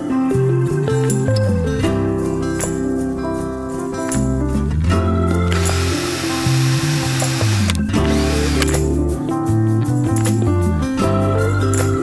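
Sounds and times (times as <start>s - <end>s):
background music: 0.0s - 12.0s
rotary tool grinding wood: 5.5s - 8.8s.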